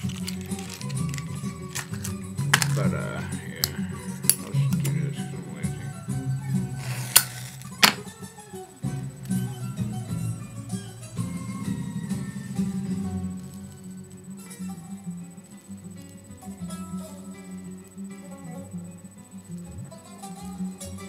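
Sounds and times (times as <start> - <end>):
acoustic guitar music: 0.0 - 21.0.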